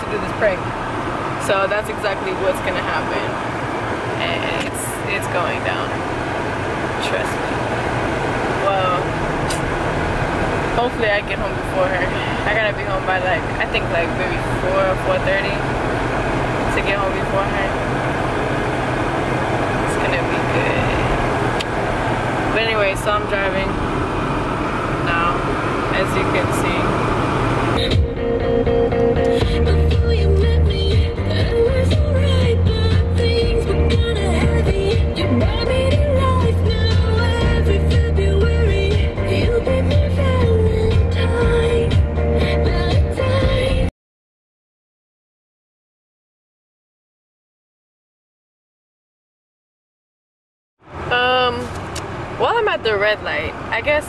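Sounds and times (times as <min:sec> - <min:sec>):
car road noise: 0:00.0 - 0:43.9, 0:50.8 - 0:54.0
music with held tone and bass: 0:27.3 - 0:43.9.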